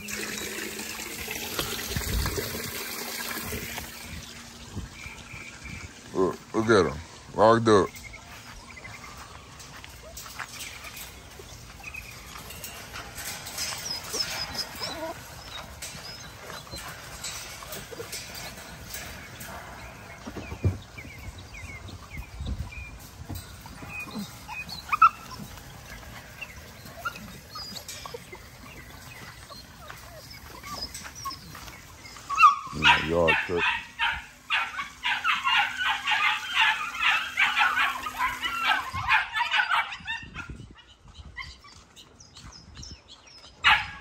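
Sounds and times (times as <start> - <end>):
puppies whining and yipping: 8.0 - 44.0.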